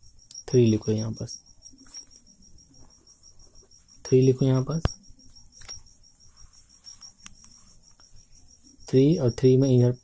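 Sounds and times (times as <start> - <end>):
high-pitched chirring: 0.0 - 10.0.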